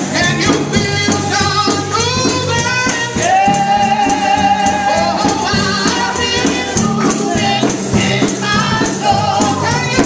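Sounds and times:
gospel singing: 0.0s - 10.0s
tambourine jingling: 0.0s - 10.0s.

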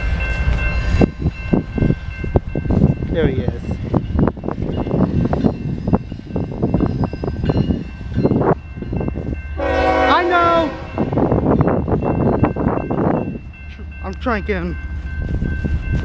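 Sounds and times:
locomotive air horn blast: 9.6s - 11.1s.

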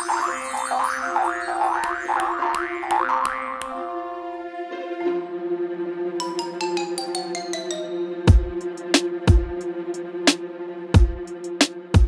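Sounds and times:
instrumental children's music: 0.0s - 12.0s
cartoon boing sound effects: 0.1s - 3.9s
sharp ticks: 1.6s - 3.8s.

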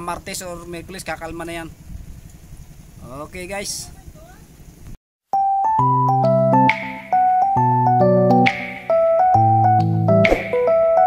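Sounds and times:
electronic keyboard music: 5.3s - 11.0s.

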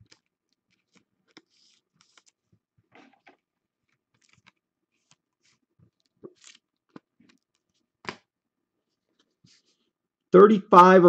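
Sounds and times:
trading cards rustling and clicking: 0.0s - 8.3s.

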